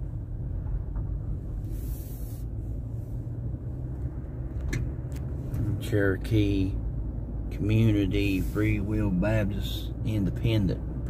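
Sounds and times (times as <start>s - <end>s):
car engine and tyres rumbling: 0.0s - 11.0s
brief hiss: 1.6s - 2.6s.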